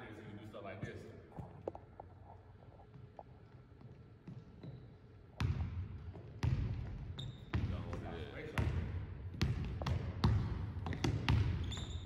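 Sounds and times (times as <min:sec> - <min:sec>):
basketball bouncing on hardwood: 0:05.4 - 0:11.8.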